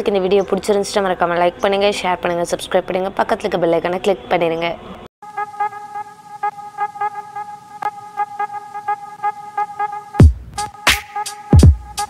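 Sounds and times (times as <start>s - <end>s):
pulsing horn-like synth music: 5.2s - 12.0s.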